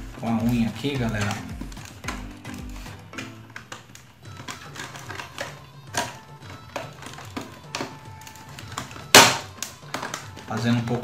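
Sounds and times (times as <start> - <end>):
quiet background music: 0.0 - 11.0
plastic laptop cover clips clicking: 0.7 - 11.0.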